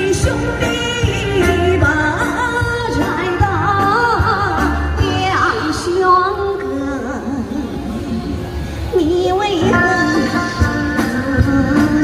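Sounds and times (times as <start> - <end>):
woman singing into microphone: 0.0 - 12.0.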